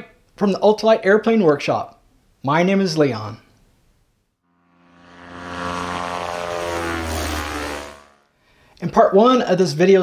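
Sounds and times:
propeller airplane flying past: 4.4s - 8.6s.

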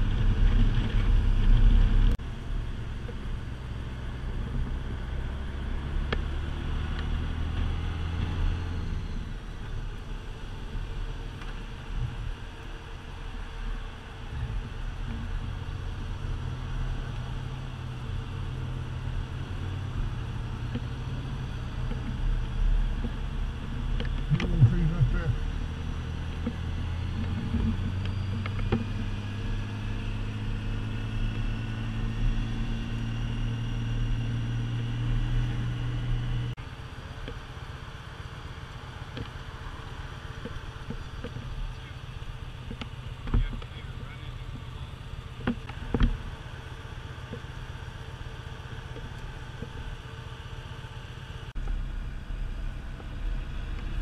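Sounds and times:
motorcycle engine running: 0.0s - 54.0s.

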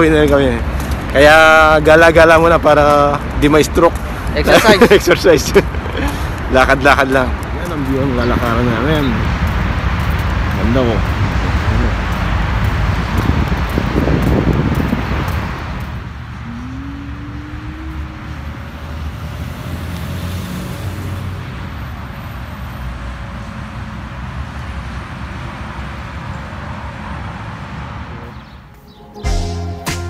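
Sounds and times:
road traffic rush: 0.0s - 30.0s
short rising engine tone: 16.3s - 18.8s.

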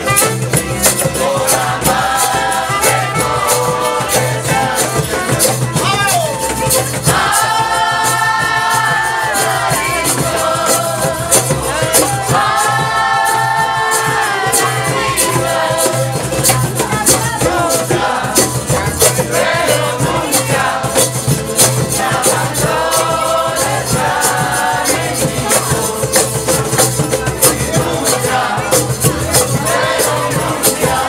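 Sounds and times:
double bass: 0.0s - 31.0s
guitar: 0.0s - 31.0s
people singing together: 0.0s - 31.0s
percussive beat: 0.0s - 31.0s
stringed instruments: 0.0s - 31.0s
flute: 2.0s - 7.4s.

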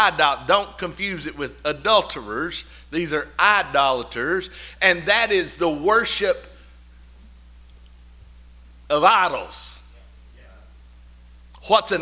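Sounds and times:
man speaking: 0.0s - 6.5s, 8.9s - 10.7s, 11.6s - 12.0s.

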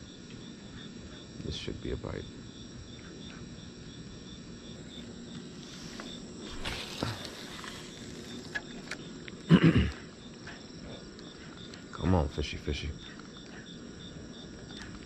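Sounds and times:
crickets chirping: 0.0s - 15.0s.

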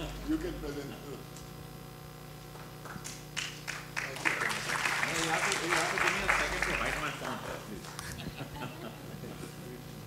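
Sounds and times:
audience applause: 3.4s - 8.0s.

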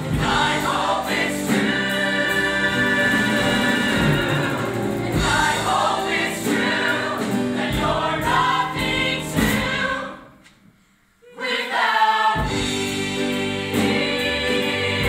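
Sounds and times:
ensemble singing with accompaniment: 0.0s - 10.5s, 11.2s - 15.0s.

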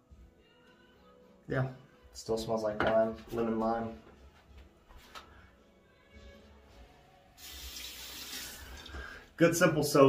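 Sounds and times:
tap water running into basin: 7.4s - 9.2s.

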